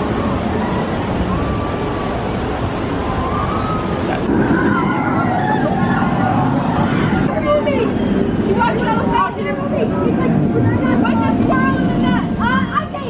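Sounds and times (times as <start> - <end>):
roller coaster rumbling on track: 0.0 - 13.0
people chattering: 3.6 - 13.0.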